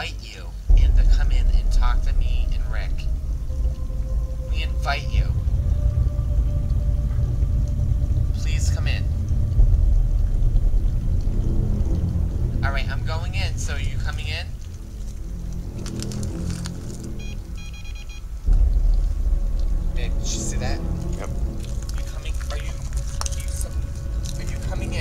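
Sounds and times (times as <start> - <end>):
low rumble: 0.6 - 25.0
faint sustained tones: 0.7 - 25.0
warbling pitched sound: 0.7 - 25.0
electronic beeps: 17.2 - 18.5.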